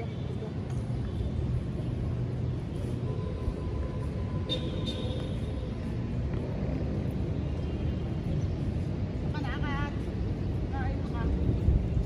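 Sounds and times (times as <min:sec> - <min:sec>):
wind buffeting microphone: 0:08.1 - 0:12.0.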